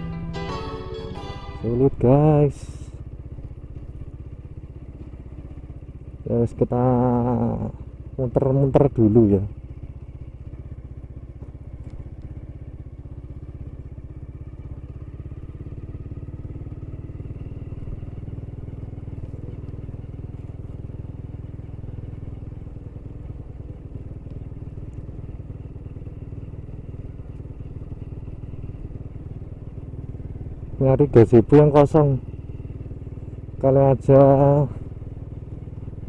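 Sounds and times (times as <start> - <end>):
small motorcycle engine running: 0.0 - 36.0.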